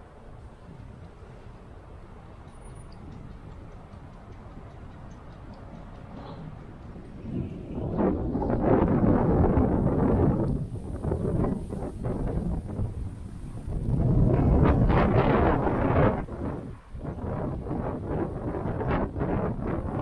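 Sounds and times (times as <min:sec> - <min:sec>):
wind gusting on microphone: 0:00.0 - 0:20.0.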